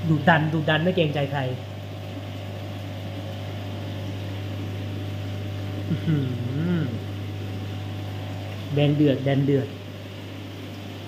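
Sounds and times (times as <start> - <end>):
aquarium pumps humming: 0.0 - 11.0
man saying uh-huh: 5.9 - 7.1.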